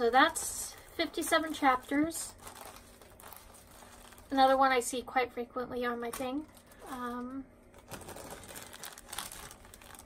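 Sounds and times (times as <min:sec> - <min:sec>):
plastic bag crinkling: 0:00.0 - 0:04.9, 0:06.0 - 0:10.0.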